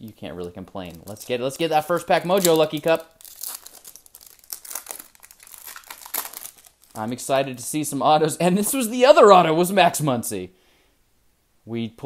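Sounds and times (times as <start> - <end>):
foil wrapper crinkling: 0.1 - 7.3
wrapper tearing open: 0.4 - 7.2.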